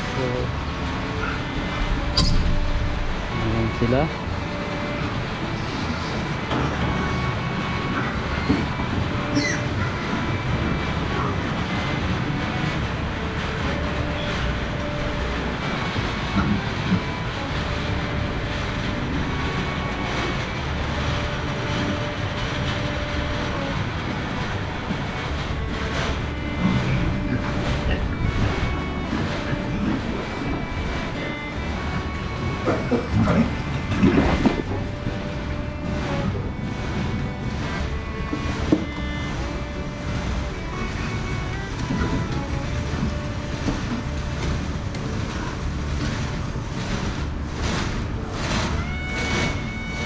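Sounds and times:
barn rumbling ambience: 0.0s - 50.0s
soft background music: 0.0s - 50.0s
short metallic clinks: 2.2s - 2.6s.

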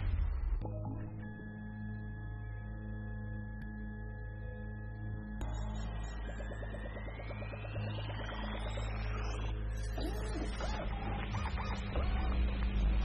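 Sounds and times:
low rumble: 0.0s - 0.8s
rising electronic sweep: 5.4s - 13.0s
warbling computer chirps: 5.4s - 13.0s.

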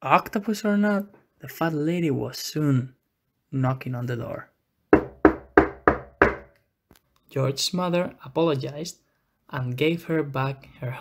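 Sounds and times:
knocking on wooden door: 4.9s - 6.5s.

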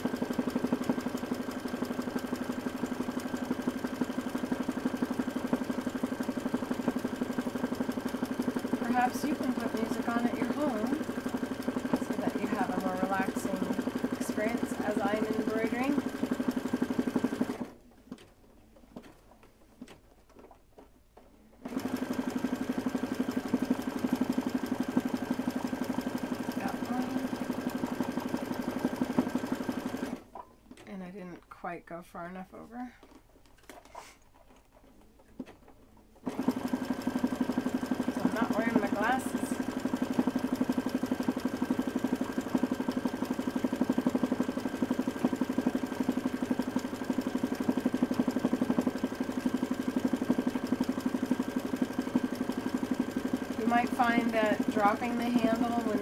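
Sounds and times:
sewing machine running: 0.0s - 18.2s, 21.6s - 30.4s, 36.2s - 56.0s.

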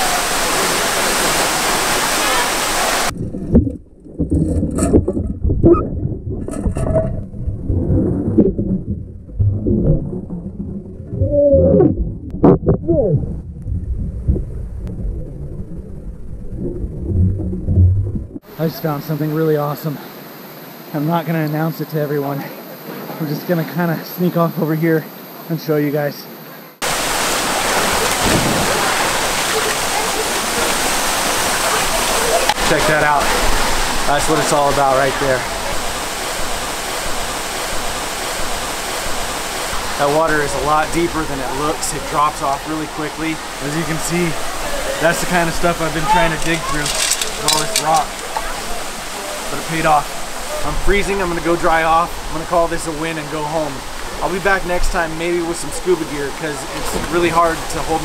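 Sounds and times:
waterfall pouring into pool: 0.0s - 3.2s, 26.8s - 58.0s
muffled underwater rumble: 3.1s - 18.4s.

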